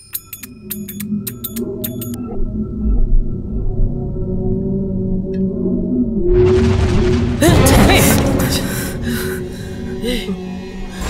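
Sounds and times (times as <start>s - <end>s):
ringing percussion strikes: 0.0s - 2.2s
low sustained droning tone: 0.4s - 11.0s.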